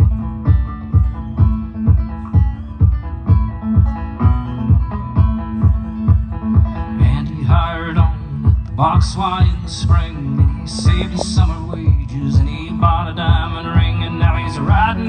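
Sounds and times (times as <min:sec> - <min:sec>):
man singing: 0:06.9 - 0:15.0
banjo picking: 0:09.8 - 0:13.8
low beat thump: 0:10.6 - 0:12.2.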